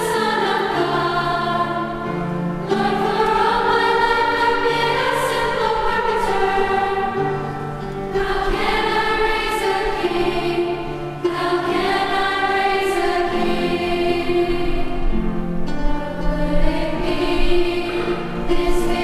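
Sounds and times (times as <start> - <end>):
girls' choir singing in harmony: 0.0 - 19.0.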